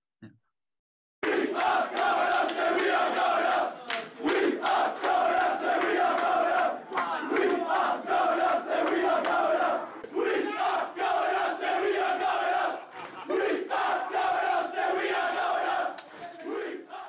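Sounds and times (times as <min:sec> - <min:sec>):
men chanting and singing: 0:01.5 - 0:17.0.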